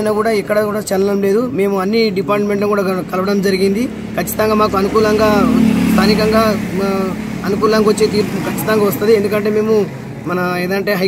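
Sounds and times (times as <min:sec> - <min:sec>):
faint road traffic rumbling: 0:00.0 - 0:11.0
man speaking: 0:00.0 - 0:11.0.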